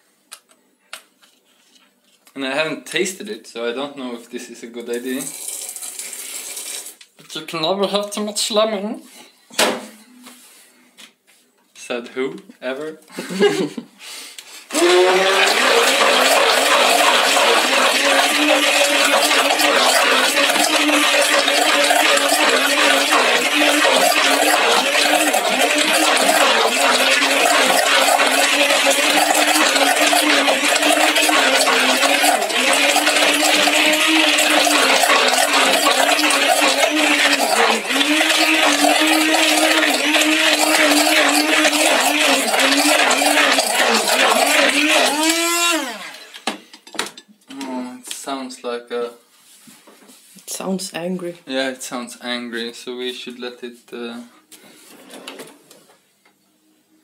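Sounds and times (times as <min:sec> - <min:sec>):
immersion blender motor labouring: 0:14.7 - 0:46.5.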